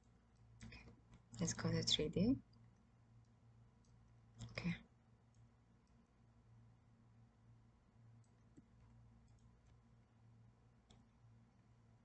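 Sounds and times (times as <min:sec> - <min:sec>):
low steady hum: 0:00.0 - 0:12.0
computer mouse clicks: 0:02.5 - 0:06.1, 0:08.2 - 0:09.9, 0:10.8 - 0:11.2.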